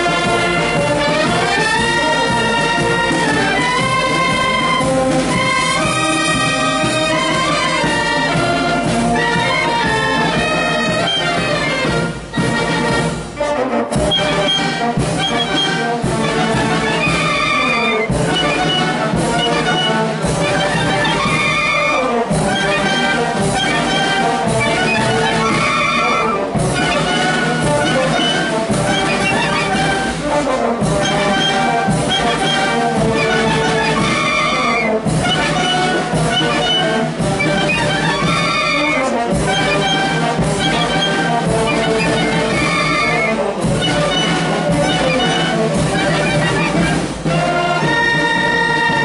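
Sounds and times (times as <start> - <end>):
wind band playing a tune: 0.0 - 49.0.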